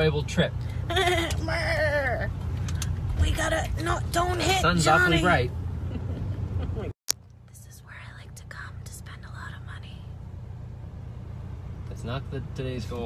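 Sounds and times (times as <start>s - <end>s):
car cabin hum: 0.0s - 13.0s.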